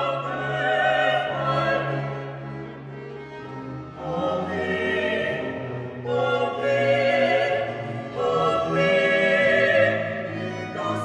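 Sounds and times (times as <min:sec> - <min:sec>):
vocal quartet singing: 0:00.0 - 0:02.8, 0:03.9 - 0:11.0
strings and organ: 0:00.0 - 0:11.0.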